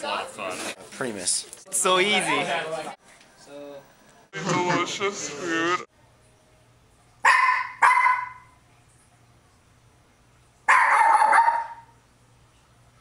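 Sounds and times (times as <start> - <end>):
dog barking: 7.2 - 8.5, 10.7 - 11.9.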